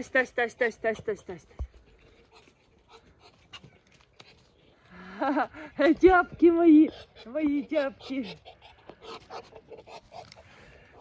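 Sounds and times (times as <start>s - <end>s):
ducks pecking in soil and leaves: 0.0s - 11.0s.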